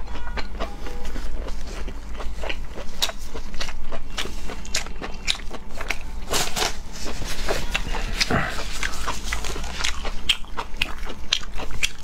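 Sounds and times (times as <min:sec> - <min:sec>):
chewing mouth clicks: 0:00.4 - 0:06.1, 0:07.7 - 0:12.0.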